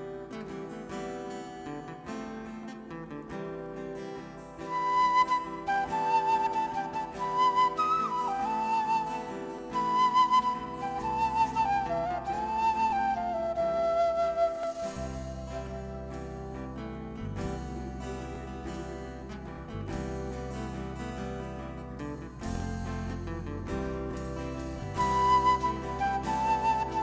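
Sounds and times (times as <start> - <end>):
acoustic guitar chords: 0.0 - 12.3, 15.0 - 27.0
flute melody: 4.6 - 19.4, 22.5 - 27.0.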